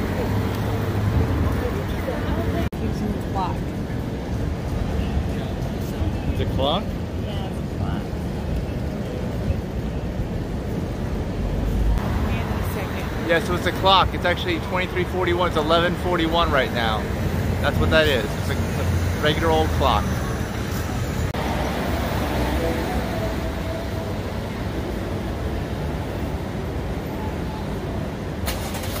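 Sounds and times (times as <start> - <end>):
city traffic rumble: 0.0 - 29.0
whining vehicle tone: 11.5 - 29.0.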